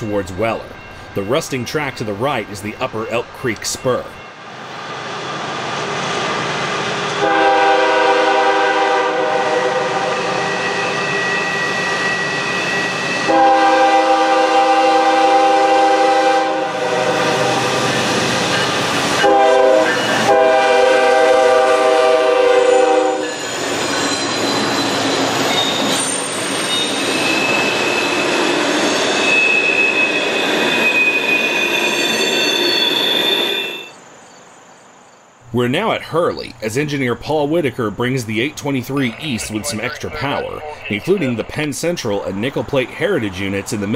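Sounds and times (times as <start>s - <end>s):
train engines and wheels rumbling: 0.0s - 43.9s
locomotive horn: 7.2s - 10.8s, 13.2s - 17.8s, 19.2s - 23.3s
high wheel squeals: 10.0s - 13.6s, 22.6s - 34.0s.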